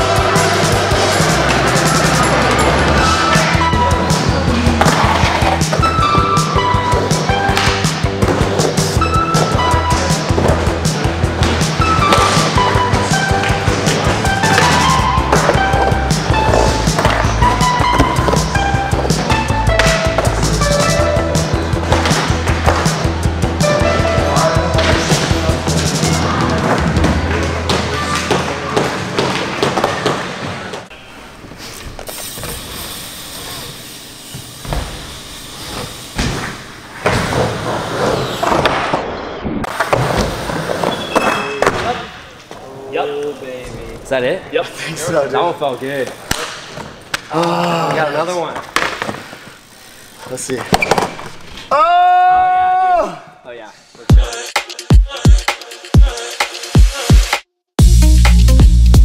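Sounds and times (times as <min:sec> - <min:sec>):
music with steady beat: 0:00.0 - 0:27.4, 0:54.1 - 0:59.0
skateboard wheels rolling on wood: 0:04.5 - 0:23.6.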